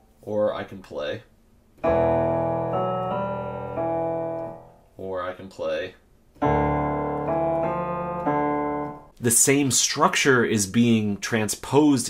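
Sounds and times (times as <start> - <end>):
keyboard piano melody: 1.8 - 5.0, 6.4 - 9.2.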